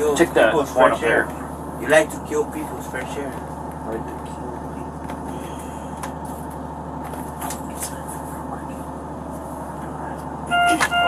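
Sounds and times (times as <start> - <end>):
idling vehicle engine drone: 0.0 - 11.0.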